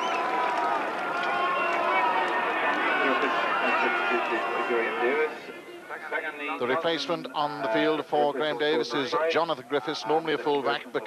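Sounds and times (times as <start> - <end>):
crowd clapping and calling out: 0.0 - 5.3.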